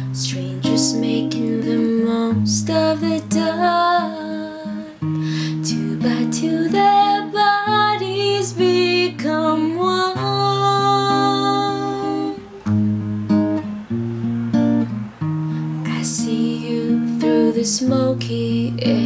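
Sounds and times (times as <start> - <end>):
person singing: 0.0 - 12.6, 15.6 - 19.0
acoustic guitar strumming: 0.0 - 19.0.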